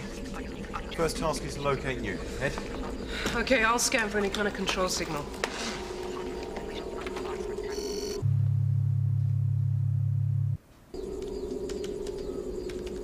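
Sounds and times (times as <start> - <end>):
steady electronic hum: 6.0 - 13.0
high electronic chirp: 6.7 - 8.2
loud low electronic drone: 8.1 - 10.6.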